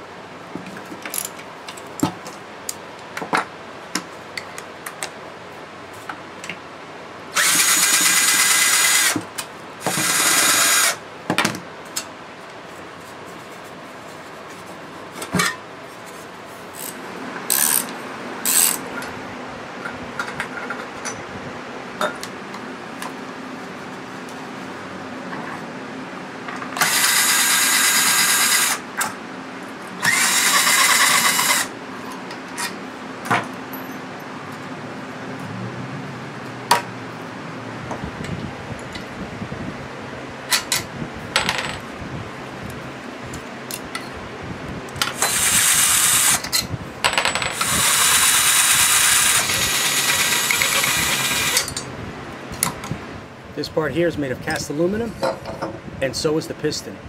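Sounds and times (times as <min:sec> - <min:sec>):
power drill running: 0:07.4 - 0:09.2, 0:09.9 - 0:11.0, 0:26.8 - 0:28.8, 0:30.0 - 0:31.7, 0:45.2 - 0:46.4, 0:47.6 - 0:51.7.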